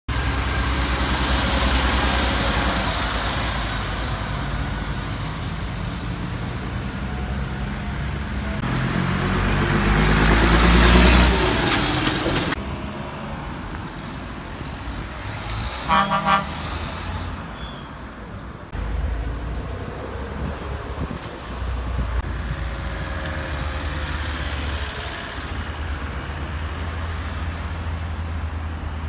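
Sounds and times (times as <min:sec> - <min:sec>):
heavy truck passing: 0:00.1 - 0:29.0
traffic driving past: 0:00.1 - 0:29.0.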